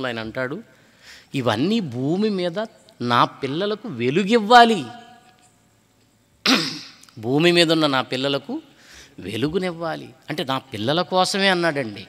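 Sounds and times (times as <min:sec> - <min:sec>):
man clearing his throat: 0:06.4 - 0:07.1.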